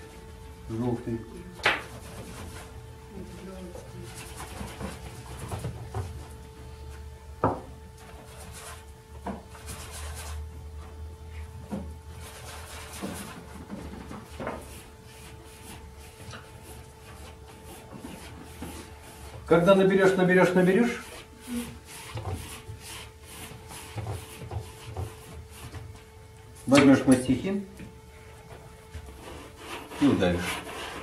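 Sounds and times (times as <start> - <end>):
faint steady hum: 0.0 - 31.0.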